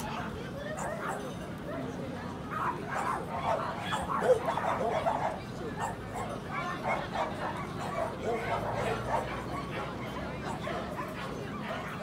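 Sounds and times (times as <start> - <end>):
people chattering: 0.0 - 12.0
dogs barking: 2.6 - 12.0.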